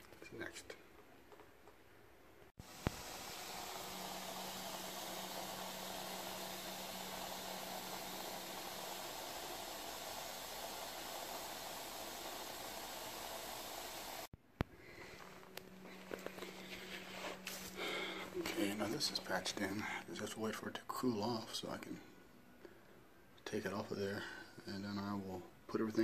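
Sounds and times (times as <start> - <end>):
steady hiss with low hum: 0.0 - 26.0.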